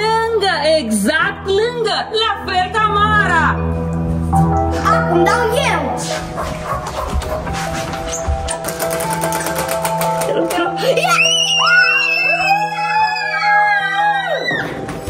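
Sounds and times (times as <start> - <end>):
background music: 0.0 - 15.0
prize wheel clicking: 8.6 - 10.6
girl screaming excitedly: 11.0 - 14.7.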